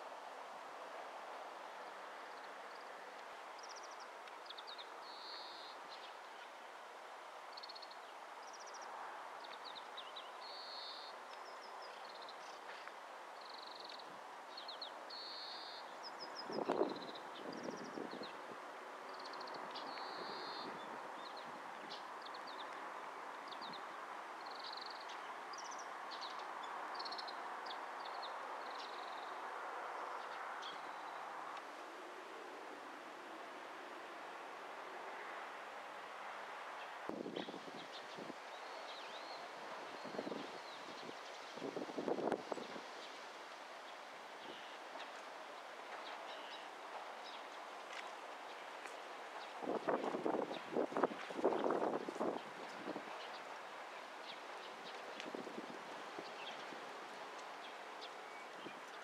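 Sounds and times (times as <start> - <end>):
wind hiss: 0.0 - 59.0.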